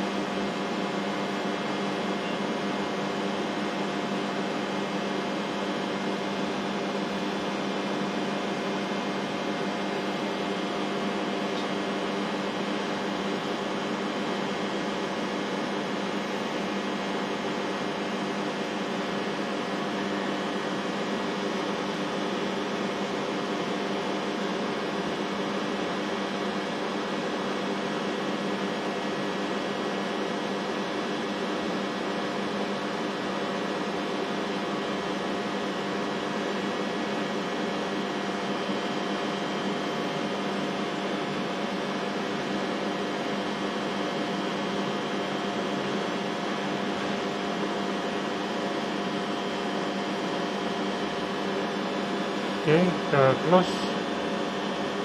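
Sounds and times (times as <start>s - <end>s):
machinery hum with pitched tones: 0.0s - 55.0s
ventilation rushing noise: 52.4s - 55.0s.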